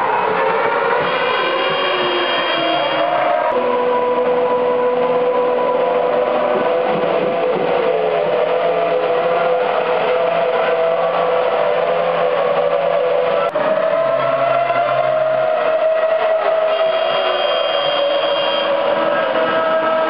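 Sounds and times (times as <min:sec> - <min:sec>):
racing car engines running: 0:00.0 - 0:17.4.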